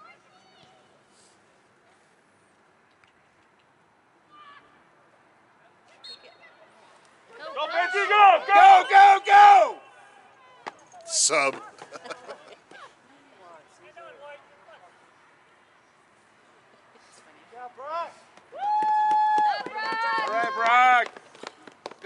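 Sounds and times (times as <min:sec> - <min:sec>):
faint crowd noise: 0:00.0 - 0:22.0.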